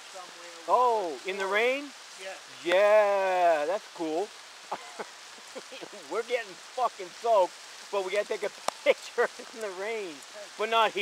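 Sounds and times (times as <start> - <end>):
steady rain falling: 0.0 - 11.0
man laughing: 4.7 - 6.1.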